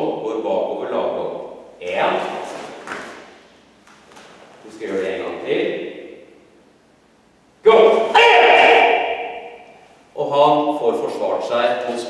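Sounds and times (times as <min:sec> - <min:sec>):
bare feet thudding on mats: 0:02.4 - 0:04.5.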